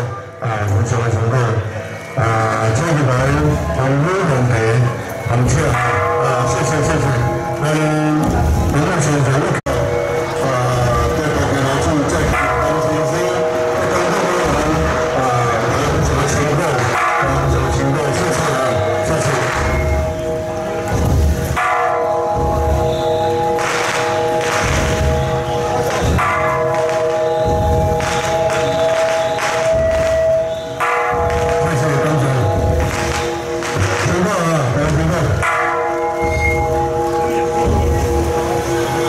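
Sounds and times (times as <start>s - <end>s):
percussion strikes: 0.0s - 39.0s
ringing bells: 0.0s - 39.0s.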